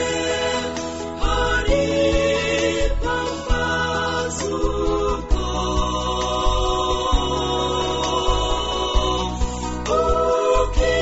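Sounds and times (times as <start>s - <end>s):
women singing gospel harmonies: 0.0s - 11.0s.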